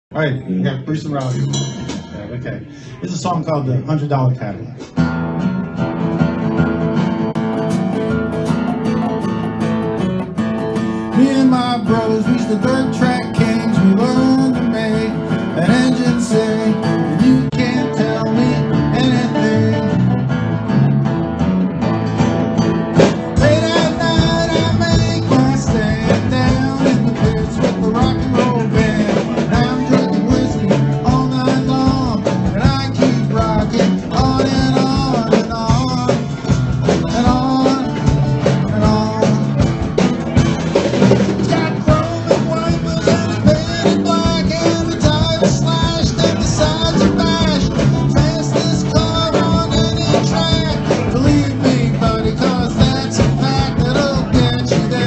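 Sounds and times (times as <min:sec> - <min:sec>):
acoustic guitar strumming: 0:01.2 - 0:03.0, 0:04.8 - 0:55.0
man singing: 0:10.9 - 0:20.2, 0:23.3 - 0:40.0, 0:41.3 - 0:55.0.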